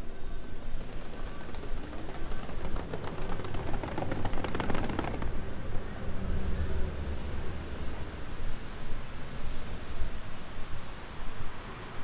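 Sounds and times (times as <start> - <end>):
traffic rumble: 0.0 - 12.0
rapid clattering rattle: 0.3 - 5.3.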